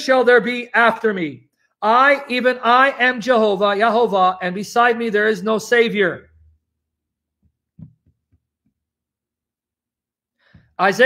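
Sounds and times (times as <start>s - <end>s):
faint soft taps: 7.8s - 8.4s.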